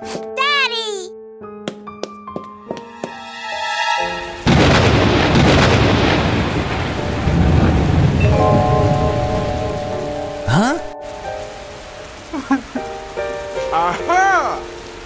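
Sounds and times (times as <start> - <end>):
soft music: 0.0 - 4.5, 8.2 - 15.0
heavy rain: 4.1 - 15.0
thunderclap rumbling: 4.4 - 13.6.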